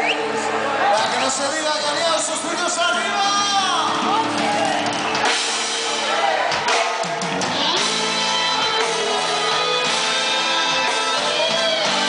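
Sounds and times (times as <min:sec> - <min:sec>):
drums: 0:00.0 - 0:12.0
live band playing amplified music: 0:00.0 - 0:12.0.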